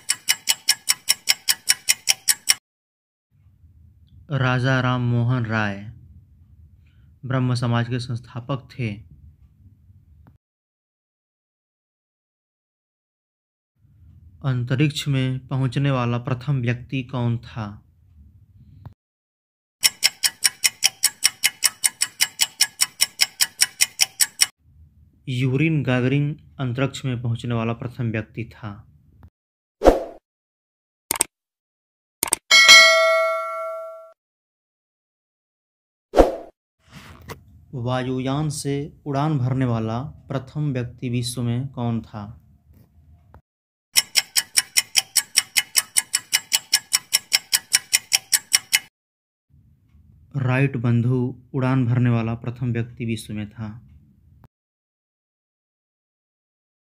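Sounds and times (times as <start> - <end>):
rapid clock ticks: 0.0 - 2.6, 19.8 - 24.5, 44.0 - 48.9.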